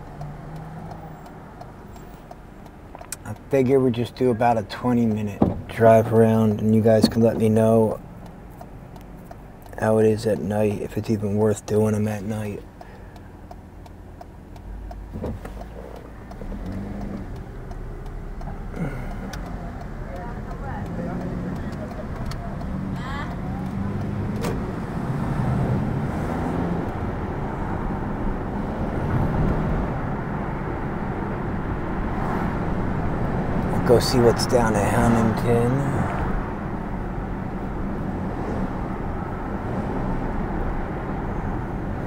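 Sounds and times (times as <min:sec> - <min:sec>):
car engine accelerating: 0:00.0 - 0:42.0
road noise: 0:00.0 - 0:42.0.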